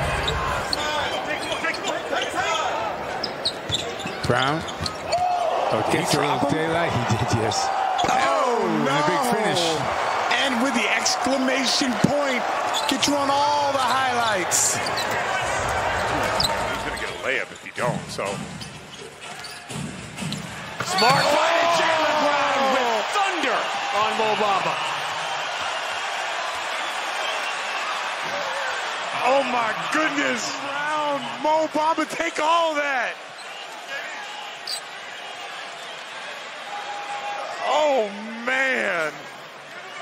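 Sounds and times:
arena crowd noise: 0.0 - 40.0.

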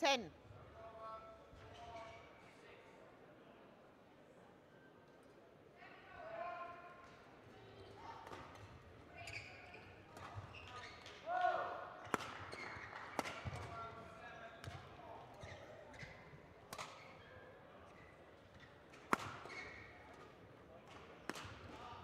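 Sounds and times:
shoe squeals: 9.2 - 11.1
racket hitting shuttlecock: 19.0 - 19.4.

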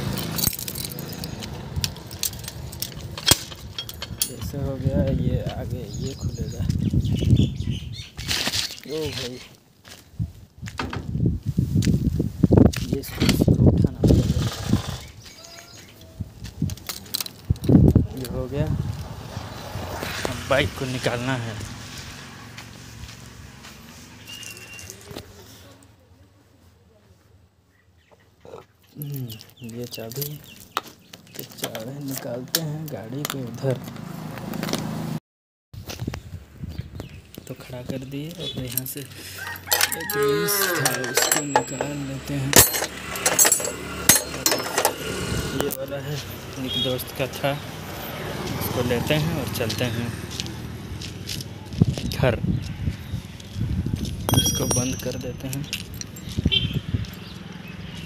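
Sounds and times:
keys and gate hardware jingling: 0.0 - 5.7, 15.6 - 17.8, 38.6 - 45.1, 53.9 - 58.0.

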